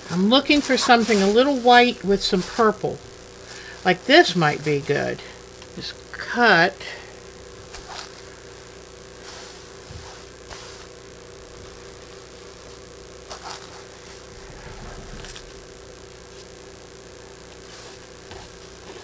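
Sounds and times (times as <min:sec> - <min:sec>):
cloth rustling: 0:00.0 - 0:05.1, 0:09.2 - 0:11.0, 0:11.6 - 0:16.5
steady low hum: 0:00.0 - 0:19.0.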